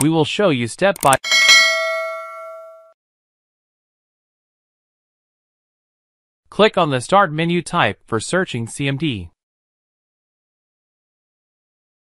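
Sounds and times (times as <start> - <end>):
bell-like chime: 1.2 - 3.0.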